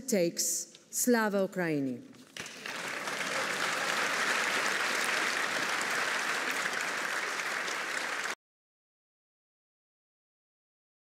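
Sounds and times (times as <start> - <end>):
audience applauding: 2.4 - 8.4.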